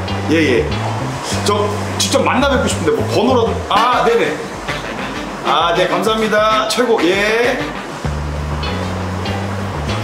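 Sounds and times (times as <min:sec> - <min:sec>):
low bass notes: 0:00.0 - 0:06.6, 0:07.2 - 0:10.0.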